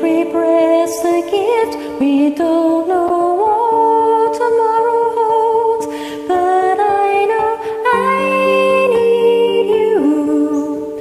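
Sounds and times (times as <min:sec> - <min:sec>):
karaoke backing track chords: 0:00.0 - 0:11.0
woman singing wordless notes: 0:00.0 - 0:11.0.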